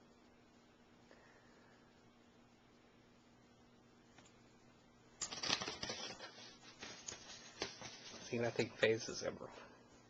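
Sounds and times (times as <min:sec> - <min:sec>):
objects rustling and scratching: 0:05.2 - 0:09.3.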